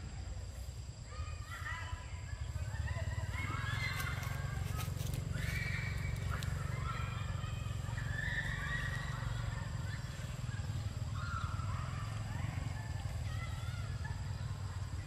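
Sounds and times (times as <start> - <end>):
monkeys squealing: 2.4 - 15.0.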